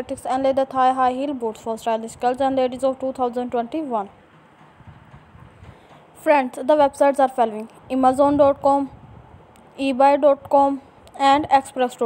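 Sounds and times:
soft dull knocks: 4.3s - 6.1s.

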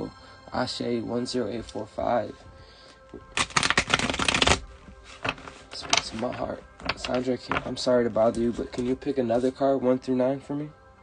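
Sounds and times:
cards shuffled by hand: 3.3s - 9.0s.

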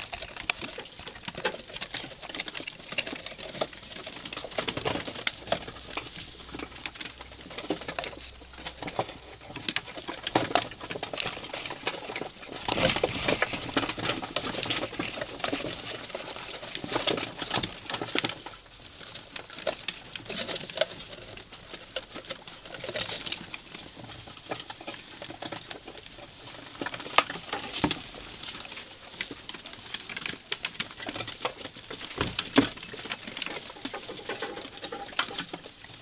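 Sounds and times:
rats scratching on cardboard: 0.0s - 36.0s.

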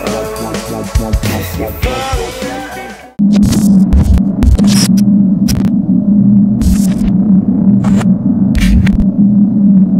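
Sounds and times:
electrical buzz with static crackles: 3.2s - 9.9s.

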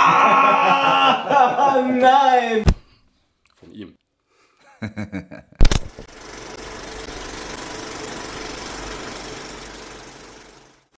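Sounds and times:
film projector clatter: 5.6s - 10.9s.

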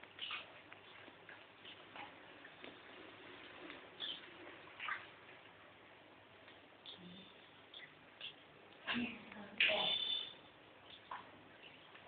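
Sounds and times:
water splashing in basin: 3.4s - 5.3s.

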